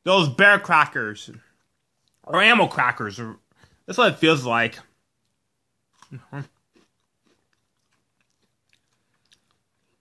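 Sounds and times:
chewing crispy snack: 5.2 - 10.0.

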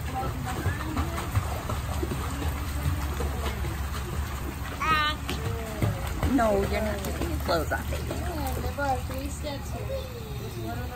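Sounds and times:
fountain water pouring: 0.0 - 10.9
water splashing from swimming: 0.0 - 10.9.

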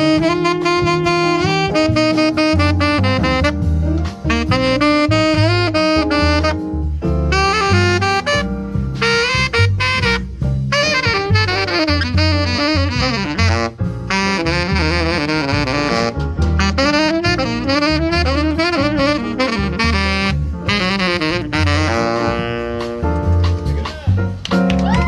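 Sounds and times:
saxophone soloing: 0.0 - 24.2
keyboard accompaniment: 0.0 - 25.0
upright bass: 0.0 - 25.0.

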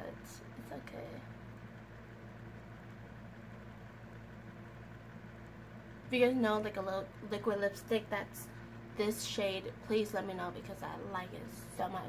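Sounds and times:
electric fan humming: 0.0 - 12.0.

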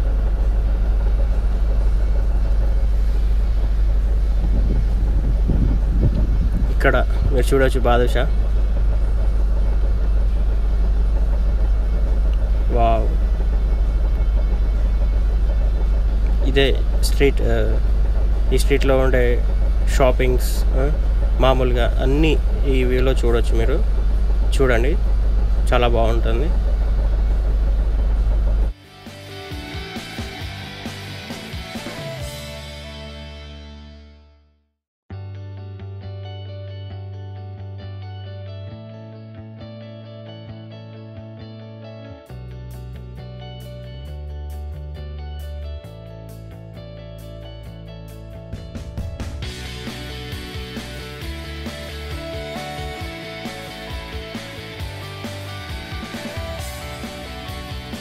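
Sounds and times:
street background rumble: 0.0 - 29.2, 47.6 - 58.0.

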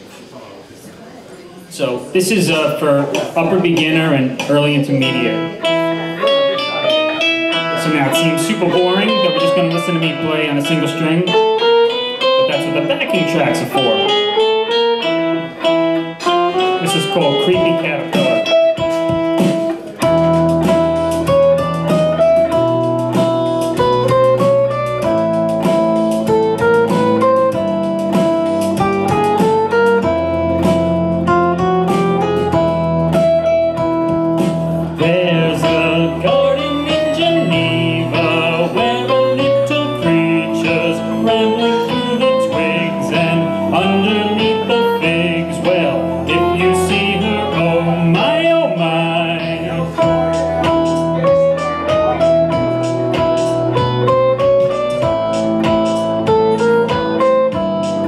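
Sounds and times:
bright high backing part: 0.0 - 58.0
electric guitar melody: 1.6 - 58.0
backing track with bass: 1.8 - 58.0.

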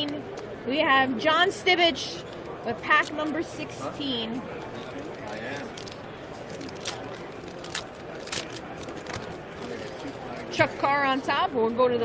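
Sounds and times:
background chatter: 0.0 - 12.0
foil pack crinkling: 4.5 - 10.3.

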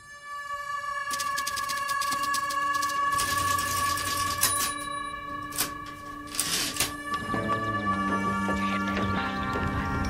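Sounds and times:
held music drone: 0.0 - 10.0
typewriter clacks: 1.1 - 4.8.

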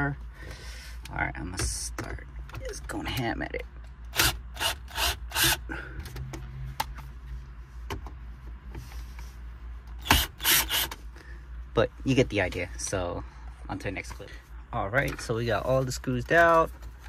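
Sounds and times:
cordless drill driving screws: 4.1 - 5.6, 10.0 - 10.9.

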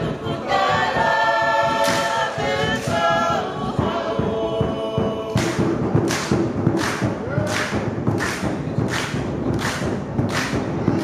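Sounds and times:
skin drum beaten with sticks: 0.0 - 11.0
group hand claps: 1.7 - 3.3, 5.4 - 11.0.

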